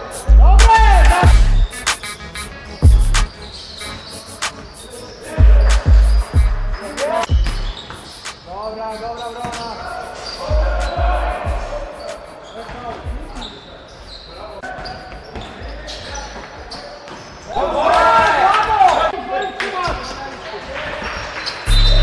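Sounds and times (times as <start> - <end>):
players' voices in hall: 0.0 - 22.0
basketball bouncing on wooden floor: 7.3 - 7.8.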